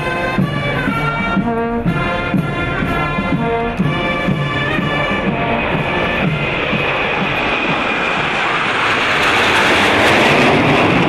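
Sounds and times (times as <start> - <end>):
band music: 0.0 - 8.7
jet aircraft roaring overhead: 0.0 - 11.0.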